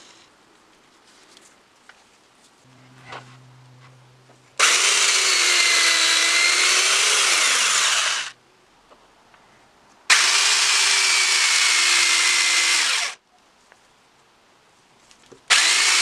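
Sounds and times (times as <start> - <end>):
electric drill boring into wood: 4.6 - 8.4, 10.1 - 13.2, 15.5 - 16.0.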